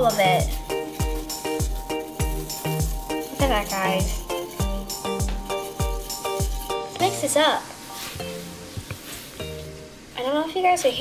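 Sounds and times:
stick stirring slime: 0:00.0 - 0:09.8
light background music: 0:00.0 - 0:11.0.

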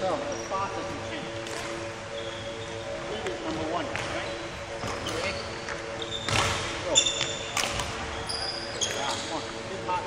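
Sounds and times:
court shoes squeaking: 0:00.2 - 0:09.7.

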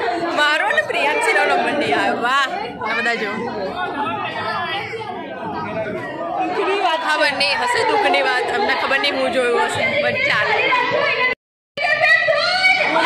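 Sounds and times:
women talking: 0:00.0 - 0:03.8, 0:06.5 - 0:13.0
crowd chatter: 0:00.0 - 0:13.0.

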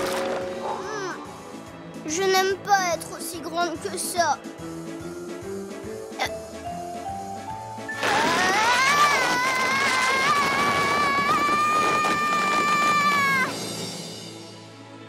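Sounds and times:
background music: 0:00.0 - 0:15.0
girl screaming: 0:08.0 - 0:13.6.

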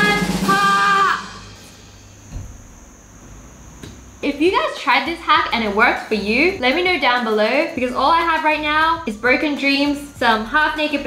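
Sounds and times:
woman's voice: 0:00.0 - 0:01.4, 0:04.2 - 0:11.0
soft low thump: 0:02.3 - 0:02.8.

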